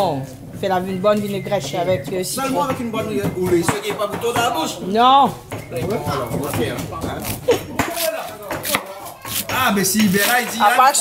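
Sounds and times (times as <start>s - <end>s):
knife cutting greens on board: 7.2s - 10.6s.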